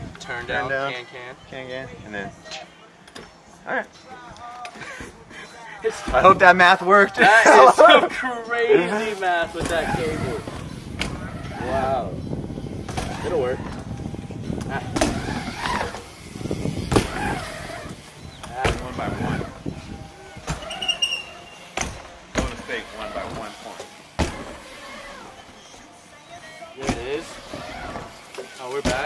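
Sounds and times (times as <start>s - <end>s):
bike knocking on wooden ramp: 18.4s - 19.2s, 21.8s - 23.6s, 24.2s - 24.7s.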